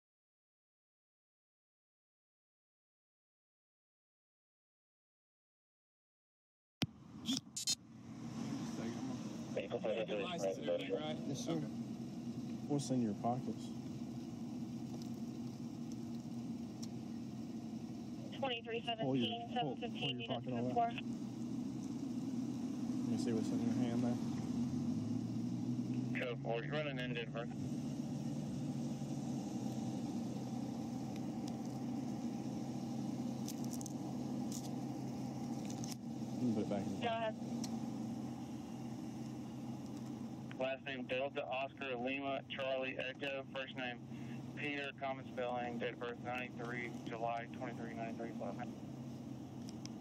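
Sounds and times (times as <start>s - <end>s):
car engine idling: 7.8s - 50.0s
man speaking: 8.6s - 11.8s, 26.1s - 27.6s, 36.4s - 37.0s, 40.6s - 48.7s.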